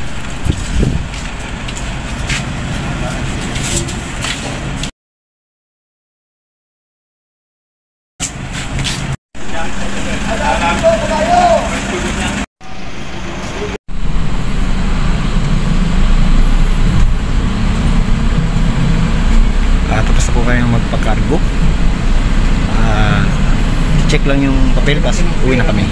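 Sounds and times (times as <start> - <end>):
outdoor sound: 0.0 - 4.9, 8.2 - 25.9
vehicle engine and road noise: 0.0 - 4.9, 8.2 - 25.9.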